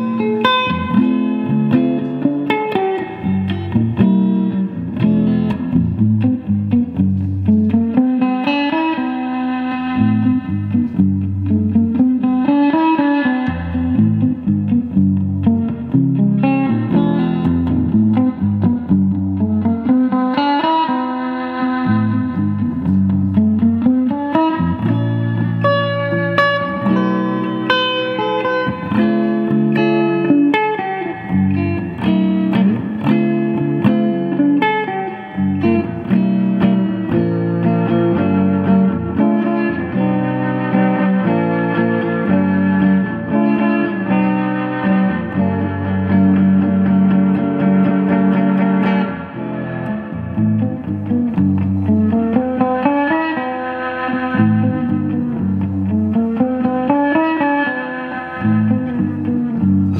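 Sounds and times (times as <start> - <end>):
electric guitar through an amp: 0.0 - 59.9.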